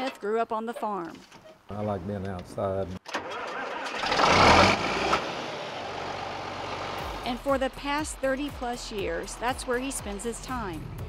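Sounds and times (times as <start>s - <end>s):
tractor diesel engine starting: 3.0s - 11.0s.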